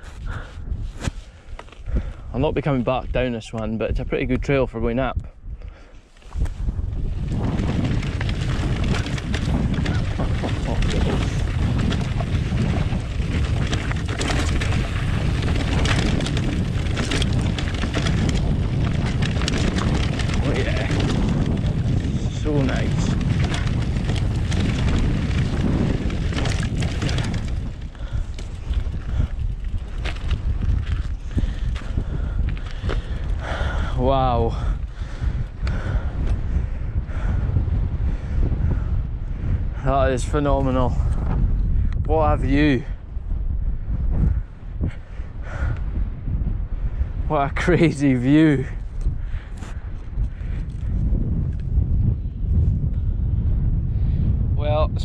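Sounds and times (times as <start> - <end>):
wind buffeting microphone: 0.0 - 55.0
bike clicks and rattles: 5.7 - 42.0, 46.8 - 53.1.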